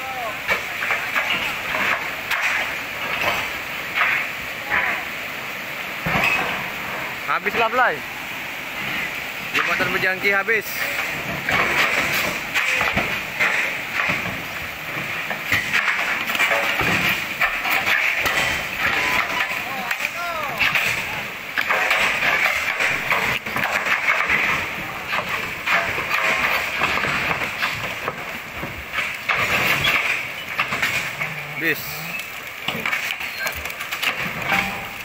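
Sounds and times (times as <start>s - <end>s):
rushing floodwater: 0.0s - 35.0s
scattered knocks: 0.4s - 4.9s, 9.5s - 35.0s
people talking and calling out: 18.8s - 21.4s.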